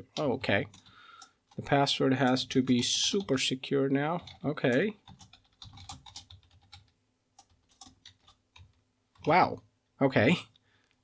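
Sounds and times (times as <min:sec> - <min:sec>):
faint computer keyboard typing: 0:00.0 - 0:03.5, 0:04.1 - 0:09.6.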